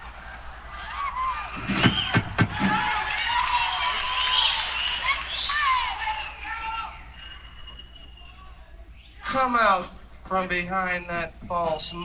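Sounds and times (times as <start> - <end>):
people shouting: 0.0 - 7.3
audience cheering and whooping: 0.0 - 7.9.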